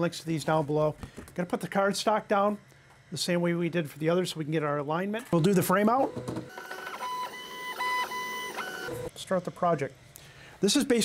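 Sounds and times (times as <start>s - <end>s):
laser engraver motors whining: 5.4s - 9.1s.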